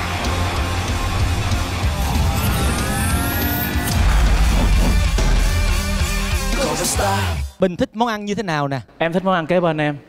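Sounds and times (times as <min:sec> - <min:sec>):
dramatic title music: 0:00.3 - 0:07.5
rising swoosh effect: 0:01.8 - 0:06.3
sharp hit: 0:01.8 - 0:06.7.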